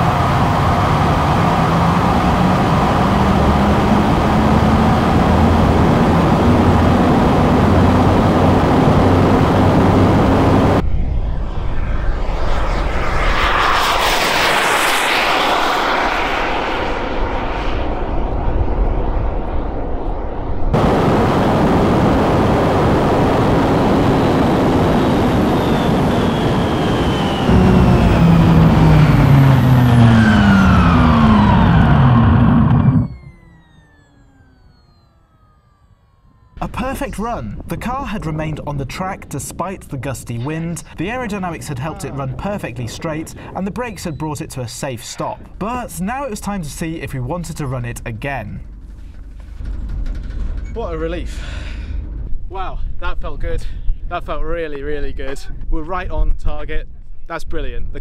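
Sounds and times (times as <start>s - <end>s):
falling whines: 0.0s - 38.8s, 40.4s - 44.6s
rush of wind tyres and engine: 0.0s - 58.0s.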